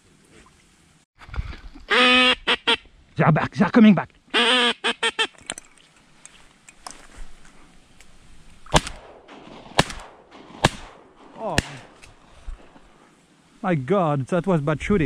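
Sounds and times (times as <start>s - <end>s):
honking calls: 1.9s - 2.9s, 4.3s - 5.4s
shotgun shots: 8.7s - 12.1s.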